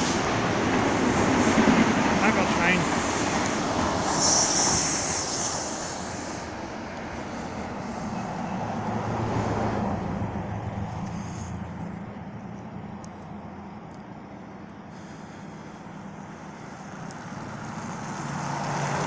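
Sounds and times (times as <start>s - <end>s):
train wheels rumbling on rails: 0.0s - 19.0s
brief high hiss: 3.4s - 6.5s.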